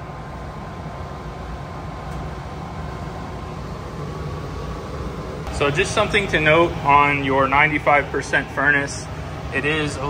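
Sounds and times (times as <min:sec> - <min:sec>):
gas furnace blower running: 0:00.0 - 0:10.0.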